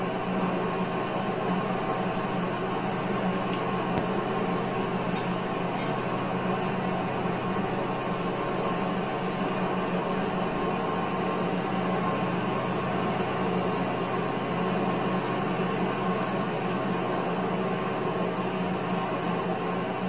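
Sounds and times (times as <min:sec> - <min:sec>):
simulated road noise: 0:00.0 - 0:16.1
simulated car engine drone: 0:00.0 - 0:18.5.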